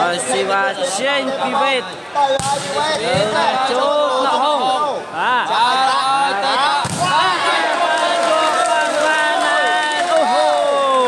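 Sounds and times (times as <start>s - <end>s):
volleyball smack: 6.8s - 7.2s.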